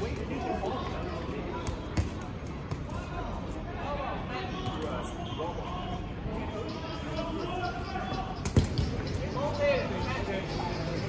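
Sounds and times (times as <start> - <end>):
ball bouncing: 8.4 - 9.2.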